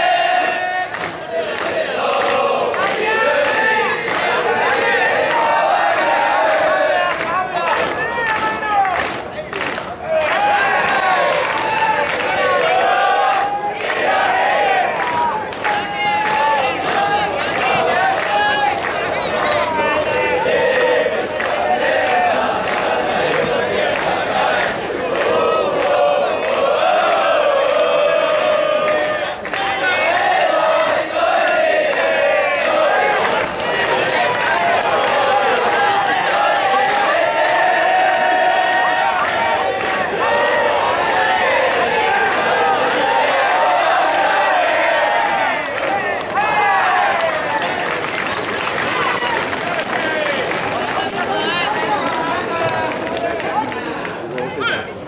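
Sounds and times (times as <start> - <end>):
crowd chanting and shouting: 0.0 - 55.0.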